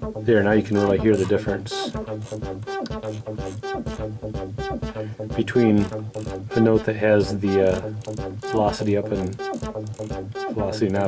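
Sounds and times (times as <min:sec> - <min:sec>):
synthesizer bass line: 0:00.0 - 0:11.0.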